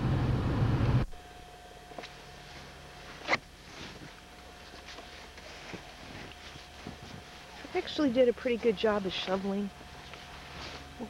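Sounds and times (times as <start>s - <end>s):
car running from inside cabin: 0.0s - 1.2s.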